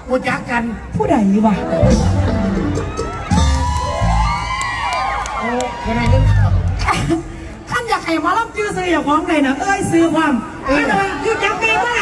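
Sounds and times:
live band music with bass beat: 1.0 - 4.8
crowd cheering and whooping: 1.9 - 6.9.

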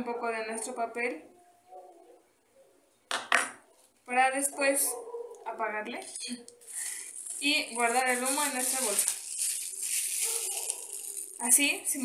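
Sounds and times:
plastic bag crinkling: 6.0 - 12.0.

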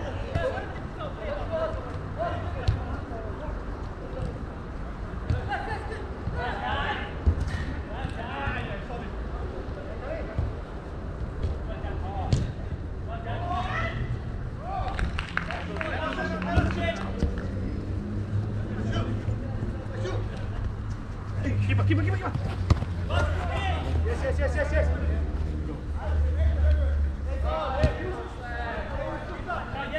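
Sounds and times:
players shouting and calling: 0.0 - 29.9
football being kicked: 12.3 - 12.6, 22.3 - 23.4.

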